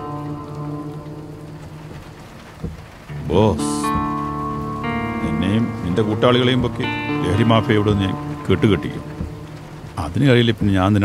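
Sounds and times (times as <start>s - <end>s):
background score notes: 0.0s - 11.0s
steady rain falling: 0.0s - 11.0s.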